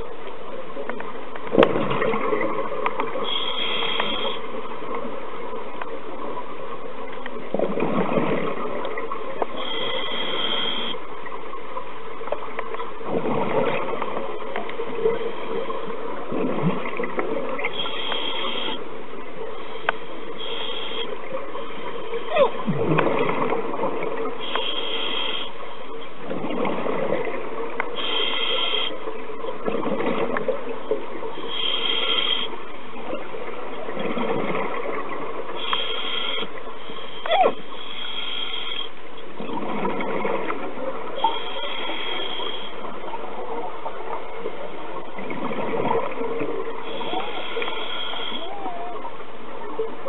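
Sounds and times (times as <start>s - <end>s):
exhaled bubbles rushing: 1.4s - 3.2s, 7.4s - 9.2s, 13.0s - 17.7s, 22.2s - 24.4s, 26.2s - 27.9s, 29.1s - 31.3s, 32.6s - 35.6s, 39.3s - 41.2s, 42.9s - 49.2s
scuba regulator inhale hiss: 3.2s - 4.5s, 9.6s - 11.0s, 17.7s - 18.8s, 19.6s - 21.2s, 24.4s - 25.6s, 28.0s - 29.0s, 31.4s - 32.6s, 35.6s - 39.0s, 41.2s - 42.9s, 46.8s - 48.5s.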